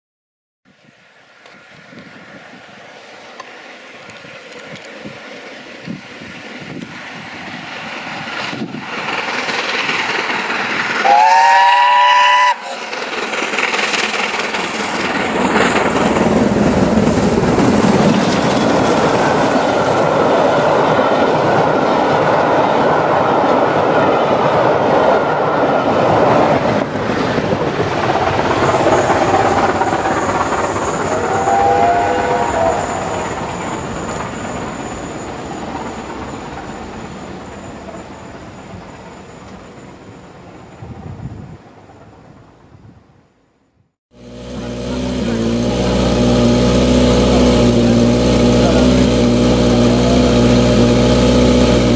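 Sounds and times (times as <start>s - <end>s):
train wheels clickety-clack: 6.7s - 40.1s
steam locomotive whistle: 11.0s - 12.9s, 30.8s - 35.3s, 44.2s - 51.9s.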